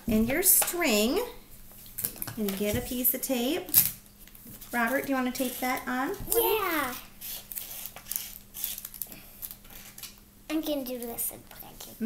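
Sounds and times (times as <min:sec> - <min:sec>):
sticky tape clicks and rustles: 0:04.9 - 0:10.2.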